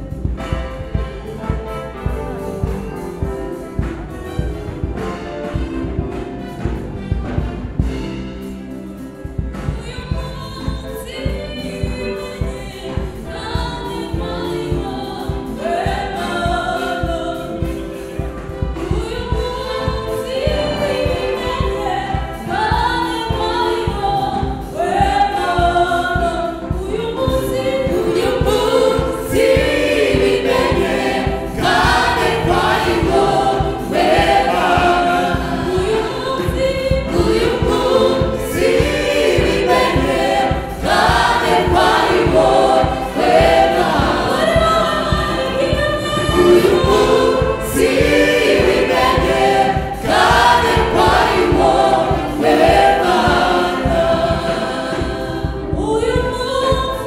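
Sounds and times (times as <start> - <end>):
gospel choir singing: 0.0 - 57.0.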